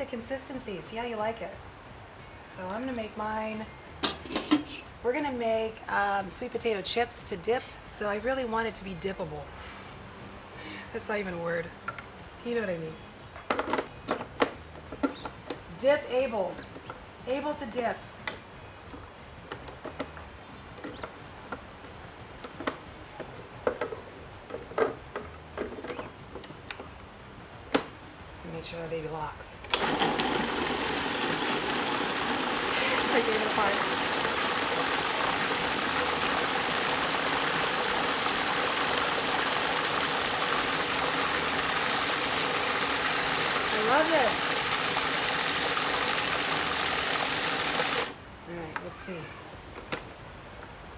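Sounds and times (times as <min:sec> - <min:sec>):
food processor motor running: 0:29.8 - 0:48.2.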